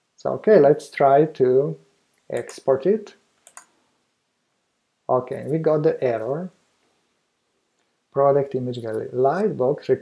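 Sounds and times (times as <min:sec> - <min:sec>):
computer mouse clicks: 0:03.4 - 0:03.7.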